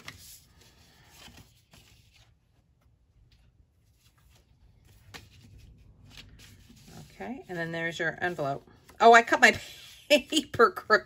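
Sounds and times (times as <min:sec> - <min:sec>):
paper rustling: 0:00.0 - 0:10.6.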